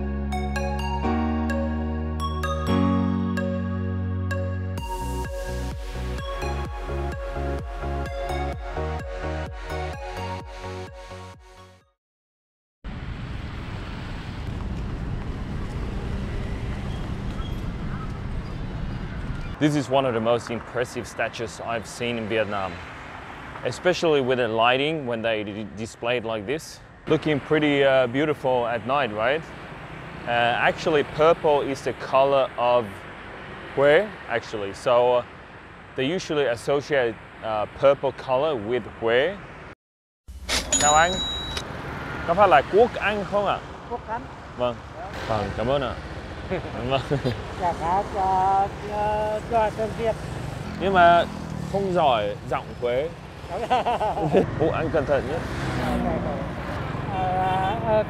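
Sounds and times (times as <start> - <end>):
motorbike and scooter traffic: 13.5 - 25.8, 26.7 - 37.9, 40.7 - 58.0.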